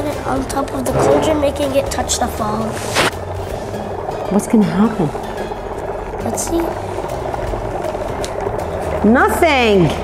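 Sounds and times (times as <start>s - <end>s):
dry ice bubbling in water: 0.0s - 10.0s.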